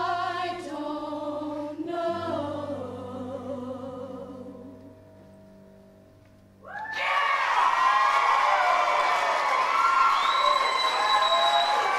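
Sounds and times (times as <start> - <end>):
choir holding a chord: 0.0 - 5.0
audience applause and cheering: 6.6 - 11.9
high shouts and whoops: 6.6 - 11.9.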